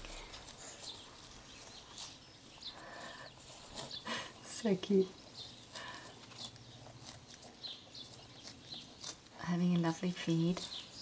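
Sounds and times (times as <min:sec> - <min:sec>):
cow tearing grass: 0:00.0 - 0:11.0.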